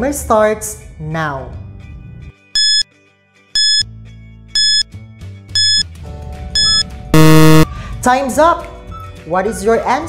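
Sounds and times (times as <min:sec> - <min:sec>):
short high beeps: 0:02.6 - 0:02.8, 0:03.6 - 0:03.8, 0:04.6 - 0:04.8, 0:05.6 - 0:05.8, 0:06.6 - 0:07.7.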